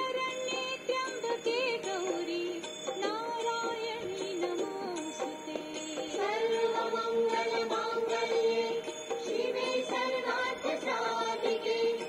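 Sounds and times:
high singing voice: 0:00.0 - 0:12.0
instrumental accompaniment: 0:00.0 - 0:12.0.

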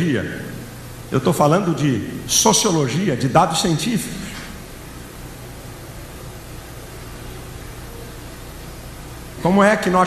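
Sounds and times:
faint low hum: 0:00.0 - 0:10.0
steady hiss: 0:00.0 - 0:10.0.

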